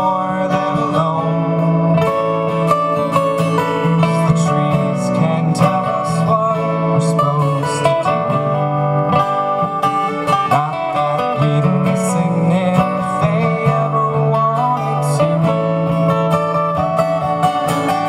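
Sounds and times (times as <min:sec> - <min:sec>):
acoustic guitars strumming: 0:00.0 - 0:18.0.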